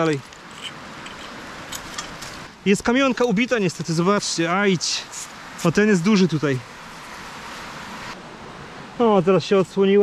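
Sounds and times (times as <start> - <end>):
man speaking: 2.6 - 6.6, 9.0 - 10.0.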